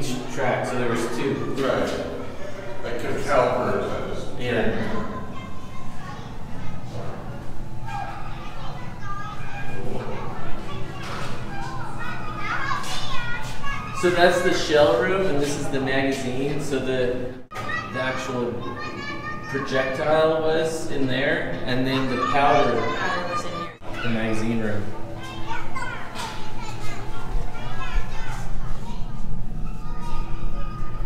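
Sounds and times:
children calling and chattering: 0.0s - 31.0s.

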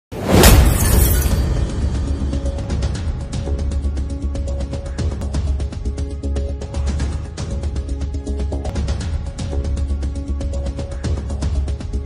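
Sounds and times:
music: 0.1s - 12.0s
glass shattering: 0.2s - 1.8s
heavy hit: 0.2s - 3.9s.

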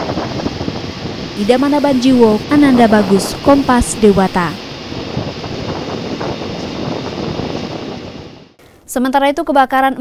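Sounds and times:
steady rushing noise: 0.0s - 8.6s.

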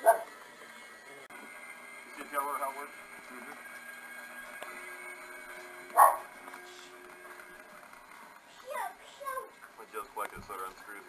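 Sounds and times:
dog barking: 0.0s - 0.3s, 5.9s - 6.3s.

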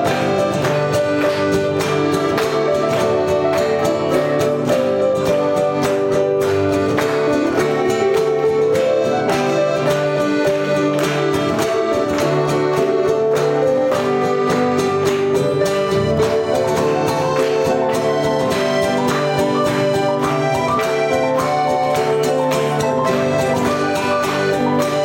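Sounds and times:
acoustic guitar rhythm: 0.0s - 25.0s
electric keyboard: 0.0s - 25.0s
piano accordion: 0.0s - 25.0s.

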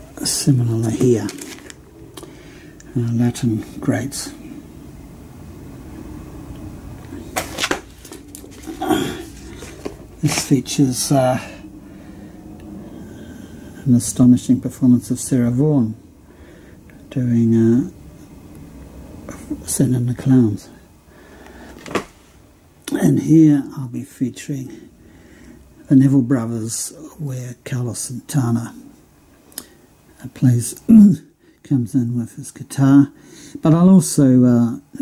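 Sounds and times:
low room noise: 0.0s - 35.0s
cardboard jacket rustling: 0.8s - 1.8s, 7.3s - 10.6s
cardboard rustles and taps: 7.3s - 8.8s.

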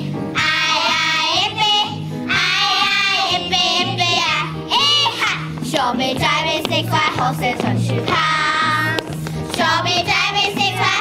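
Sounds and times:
backing track with bouncing bass: 0.0s - 11.0s
children singing: 0.4s - 9.0s, 9.6s - 11.0s.

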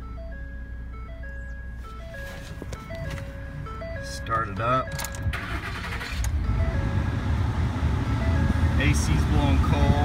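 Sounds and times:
dashboard warning chime: 0.0s - 7.4s, 8.0s - 9.8s
engine starting and idling: 4.8s - 7.5s.

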